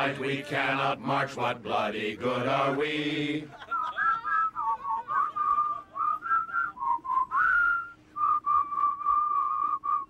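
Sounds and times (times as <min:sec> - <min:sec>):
person whistling a tune: 0:03.7 - 0:10.0.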